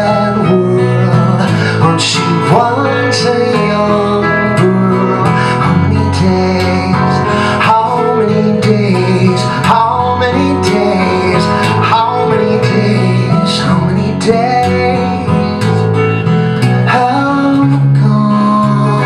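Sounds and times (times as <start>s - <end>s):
strummed acoustic guitar: 0.0s - 19.0s.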